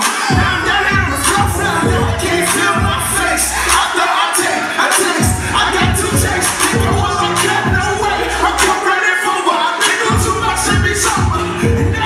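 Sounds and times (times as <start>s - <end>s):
crowd voices: 0.0s - 12.0s
hip-hop backing track: 0.0s - 12.0s
person rapping and shouting: 0.0s - 12.0s.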